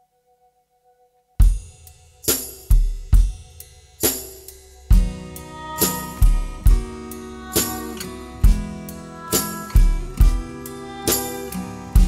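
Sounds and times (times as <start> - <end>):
drum kit beat: 1.4 - 12.0.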